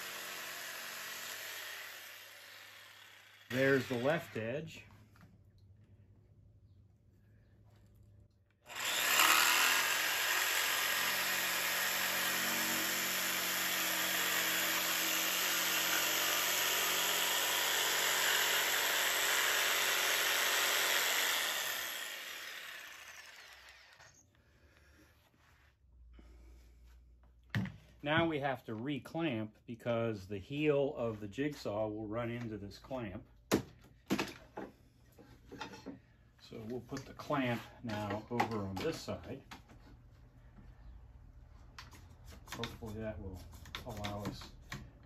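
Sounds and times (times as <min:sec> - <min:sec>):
jigsaw cutting wood: 0:00.0 - 0:04.4, 0:08.6 - 0:24.2.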